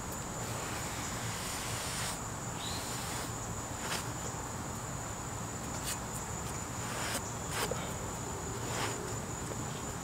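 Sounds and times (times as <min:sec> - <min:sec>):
sponge scrubbing brick pavers: 0:00.4 - 0:02.2, 0:06.8 - 0:07.8
high-pitched insect drone: 0:00.4 - 0:04.4.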